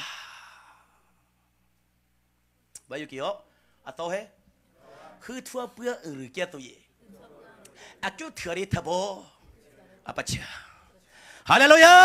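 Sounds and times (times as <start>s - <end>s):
faint sound system hum: 0.0s - 12.0s.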